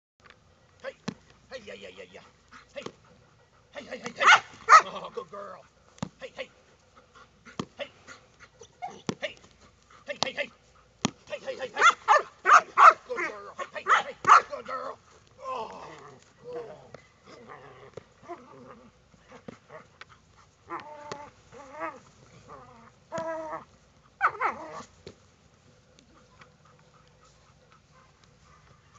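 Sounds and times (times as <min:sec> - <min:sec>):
large dog barking: 0:04.2 - 0:05.0, 0:11.7 - 0:14.6.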